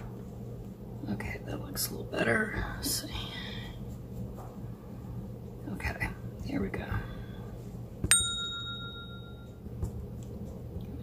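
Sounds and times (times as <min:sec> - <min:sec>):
bell ding: 0:08.1 - 0:09.6.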